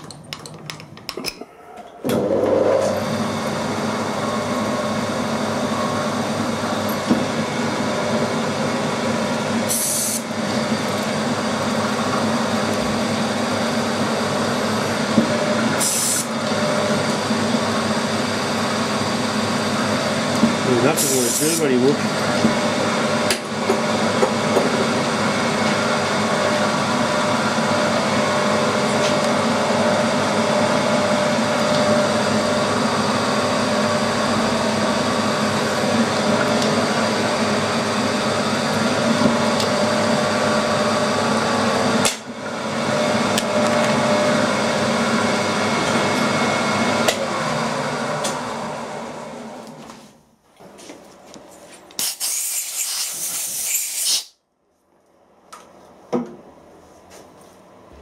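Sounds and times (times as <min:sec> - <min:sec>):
milling machine whine: 0:01.4 - 0:49.9.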